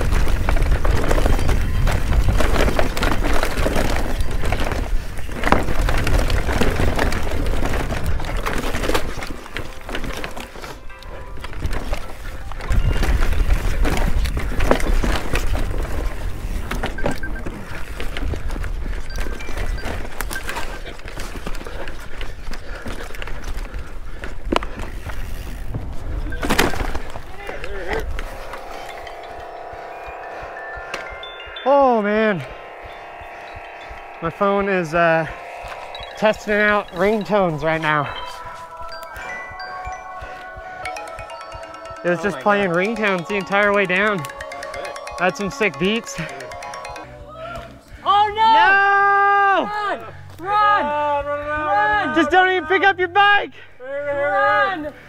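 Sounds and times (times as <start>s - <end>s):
wind on microphone: 0.0s - 9.1s
bike rattling over roots: 0.0s - 10.8s, 11.4s - 28.7s
muffled phone ringtones and music: 19.0s - 21.4s, 28.3s - 47.9s.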